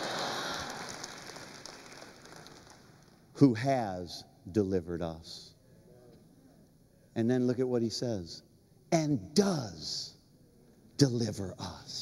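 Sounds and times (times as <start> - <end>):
congregation applauding: 0.0 - 3.2.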